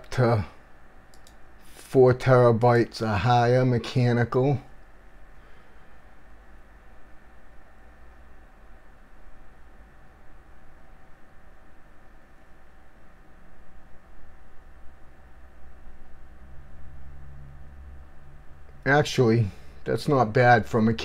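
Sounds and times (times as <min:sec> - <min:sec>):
computer equipment hum and whine: 0:00.0 - 0:21.0.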